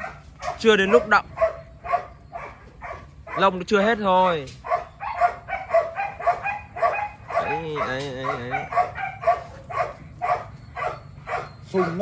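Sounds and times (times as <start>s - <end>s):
dog whining and yipping: 0.0s - 3.5s, 4.6s - 12.0s.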